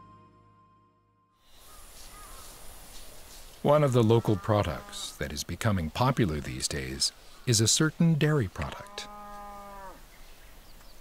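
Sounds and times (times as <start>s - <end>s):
cow mooing: 4.3s - 5.2s, 8.6s - 10.0s.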